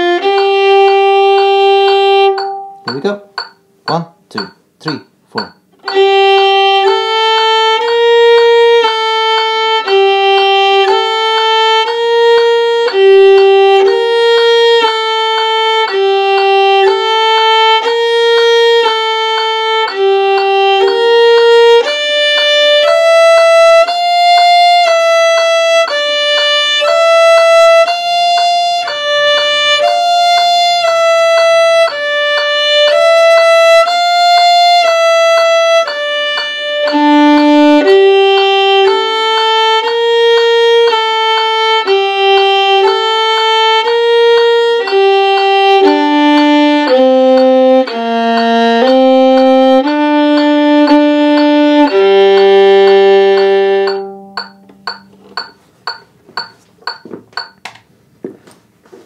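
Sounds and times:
solo bowed violin: 0.0s - 4.0s, 5.8s - 56.0s.

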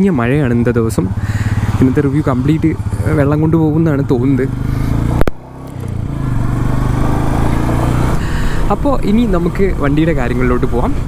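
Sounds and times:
motorcycle engine running: 0.0s - 11.0s
wind and road noise: 0.0s - 11.0s.

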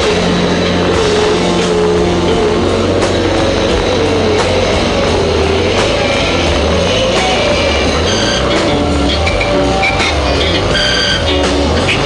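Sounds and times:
electric guitar: 0.0s - 12.0s
keyboard: 0.0s - 12.0s
rock band playing loudly: 0.0s - 12.0s.

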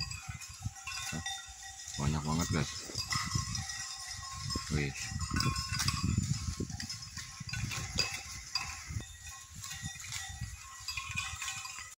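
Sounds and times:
rustling and crackling vegetation: 0.0s - 12.0s.

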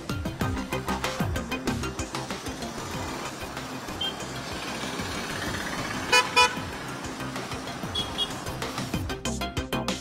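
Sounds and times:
passing vehicles: 0.0s - 10.0s
vehicle horn toots: 3.9s - 4.3s, 6.1s - 6.7s, 7.8s - 8.5s.

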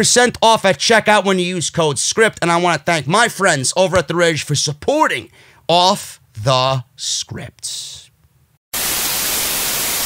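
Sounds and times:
television static hiss: 8.8s - 10.0s.

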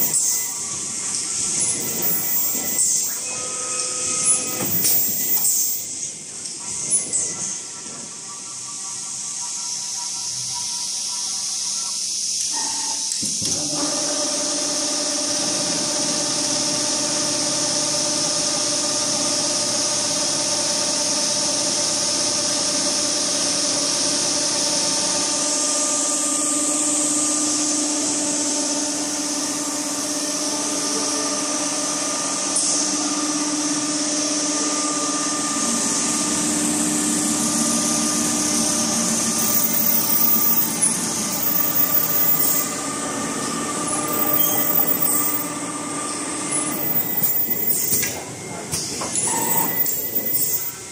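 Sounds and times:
sewing machine running: 0.0s - 3.2s, 4.1s - 5.9s, 38.6s - 43.1s, 43.9s - 45.6s, 46.5s - 48.1s, 49.3s - 50.7s.

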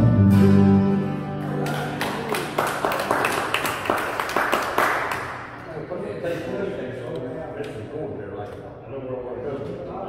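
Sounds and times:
small group applauding: 1.4s - 5.7s.

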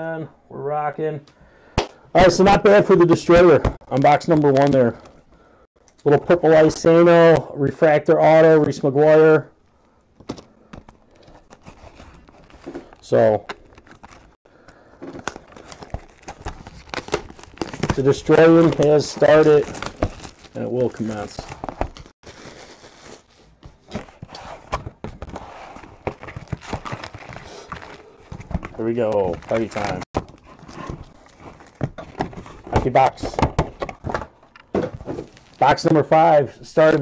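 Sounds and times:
plastic wrap crinkling: 15.1s - 23.9s, 26.0s - 33.0s, 35.2s - 35.9s.

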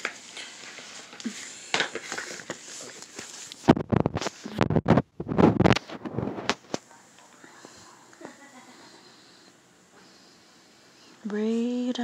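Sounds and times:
faint room noise: 0.0s - 12.0s.

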